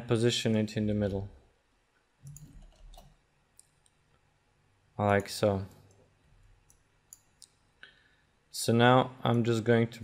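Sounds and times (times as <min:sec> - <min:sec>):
computer mouse clicks: 0:02.2 - 0:04.0.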